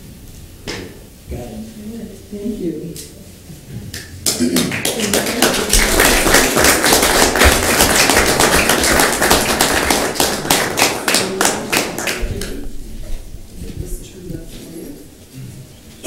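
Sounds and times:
people applauding: 0:04.0 - 0:12.6.

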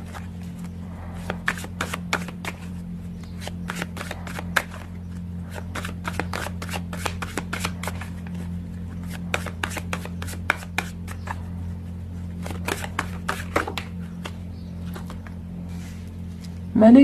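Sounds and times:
cards being shuffled: 0:00.0 - 0:11.4, 0:12.4 - 0:16.6
low hum: 0:00.0 - 0:17.0.

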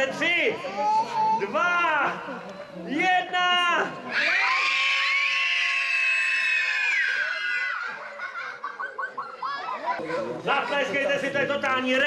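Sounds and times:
crowd of children shouting: 0:04.1 - 0:08.1.

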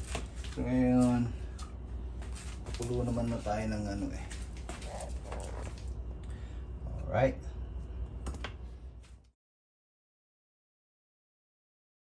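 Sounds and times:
low steady hum: 0:00.0 - 0:09.4.

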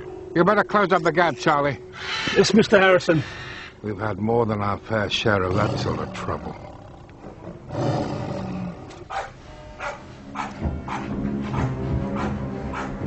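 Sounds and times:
tiger growling: 0:05.2 - 0:09.2
music score: 0:08.9 - 0:13.0.

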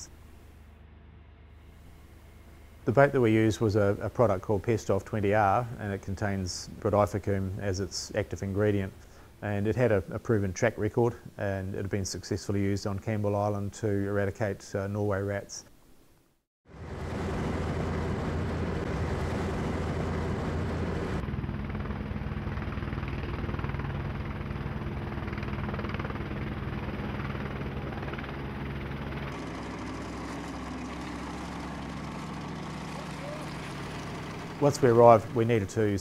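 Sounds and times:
boat engine humming: 0:00.0 - 0:04.2, 0:16.7 - 0:36.0.

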